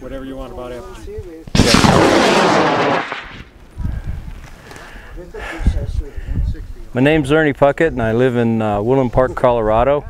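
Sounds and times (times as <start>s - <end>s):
rocket motor rushing burn: 1.6s - 3.5s.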